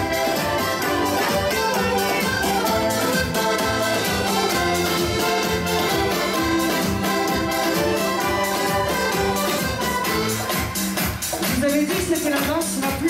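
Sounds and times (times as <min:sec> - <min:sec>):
accordion dance music: 0:00.0 - 0:13.0.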